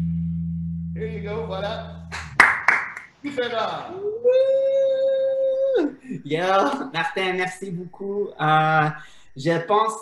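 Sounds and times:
man cheering: 0:03.9 - 0:07.2.

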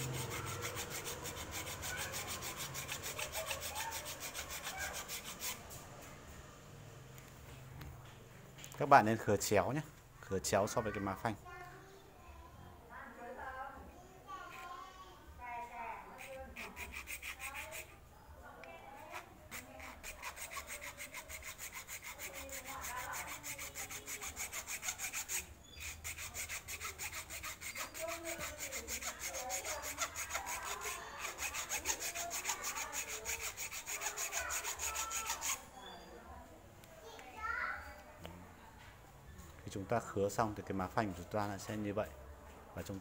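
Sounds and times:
hacksaw sawing: 0:00.0 - 0:05.8, 0:16.2 - 0:17.9, 0:19.0 - 0:35.6.

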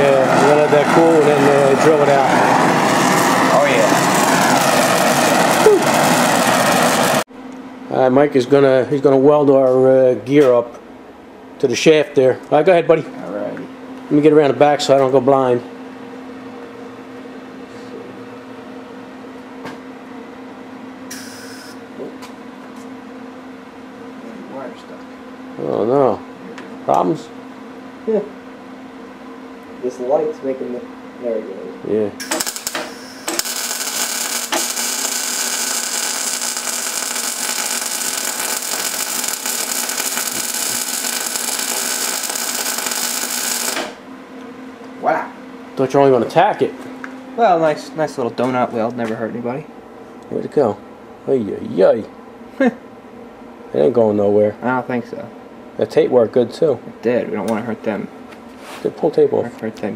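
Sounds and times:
welding arc hissing: 0:00.0 - 0:07.3, 0:21.1 - 0:21.8, 0:32.2 - 0:44.0
welder electrical hum: 0:00.0 - 0:59.9.

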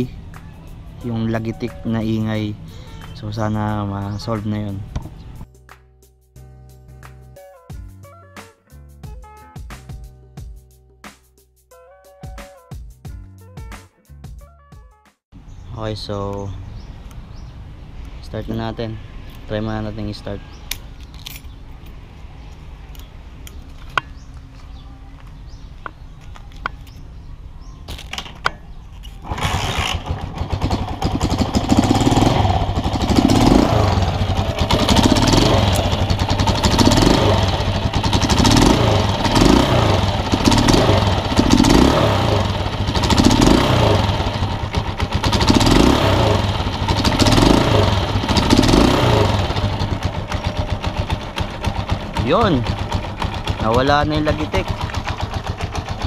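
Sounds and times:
motorcycle engine running: 0:28.8 - 0:56.0.

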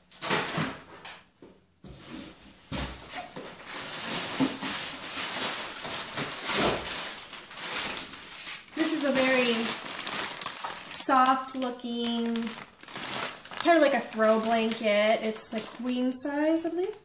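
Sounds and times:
plastic packaging crinkling: 0:02.7 - 0:17.0.

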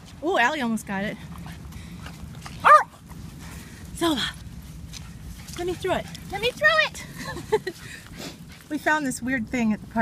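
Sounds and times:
small dog barking: 0:02.6 - 0:03.0.

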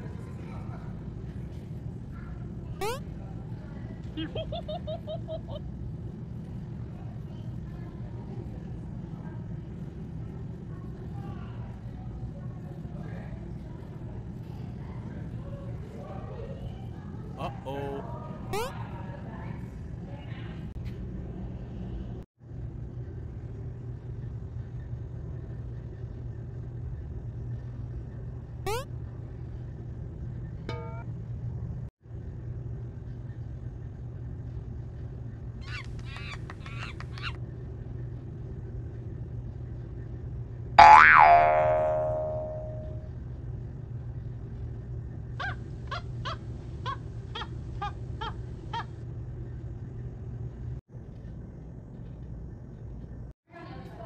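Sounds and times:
steady low hum: 0:00.0 - 0:54.0
struck bowl ringing: 0:30.7 - 0:31.1, 0:40.8 - 0:43.0.

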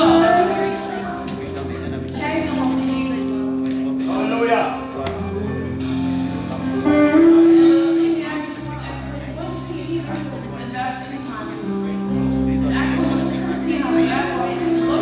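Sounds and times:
person singing: 0:00.0 - 0:01.5
electric guitar: 0:00.0 - 0:04.2, 0:04.8 - 0:10.6
worship band music: 0:00.0 - 0:15.0.

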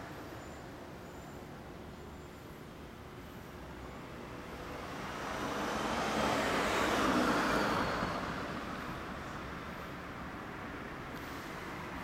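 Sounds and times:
road vehicle passing: 0:03.8 - 0:12.0.

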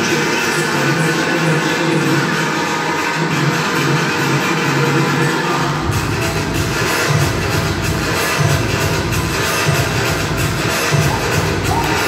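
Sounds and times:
loud dance music: 0:00.0 - 0:12.0
deep bass: 0:05.7 - 0:12.0.

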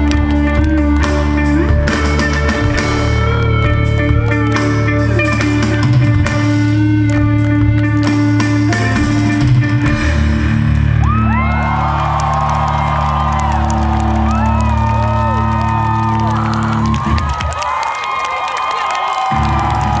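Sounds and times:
crowd whooping and cheering: 0:00.0 - 0:06.0, 0:10.4 - 0:20.0
amplified guitars and bass drone: 0:00.0 - 0:17.3, 0:19.3 - 0:20.0.

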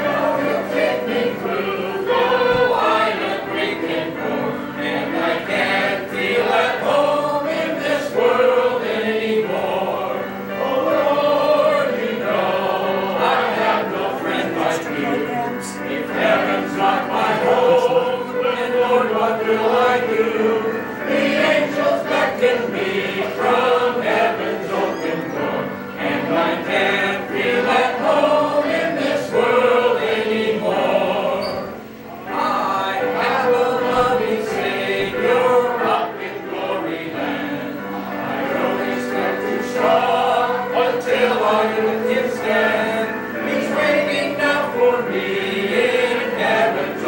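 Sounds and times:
musical accompaniment: 0:00.0 - 0:47.0
voices singing a hymn: 0:00.0 - 0:47.0.

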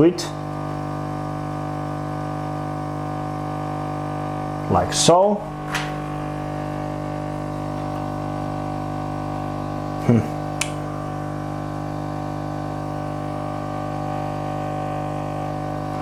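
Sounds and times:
electrical hum: 0:00.0 - 0:16.0
short vocal sound: 0:10.0 - 0:10.6
small click: 0:10.6 - 0:10.8.

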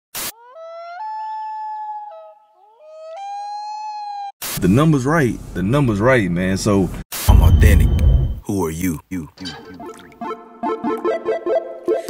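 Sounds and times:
static noise burst: 0:07.1 - 0:08.4
high pitched tone: 0:07.3 - 0:08.4.

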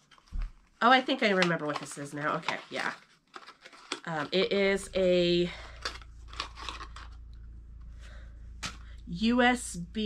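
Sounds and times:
packaging crackling and clicking: 0:00.0 - 0:04.5, 0:05.5 - 0:07.4
faint low hum: 0:04.2 - 0:10.0.

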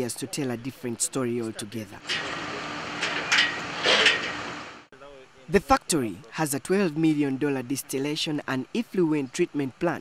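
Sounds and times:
factory machinery running: 0:02.0 - 0:04.8.

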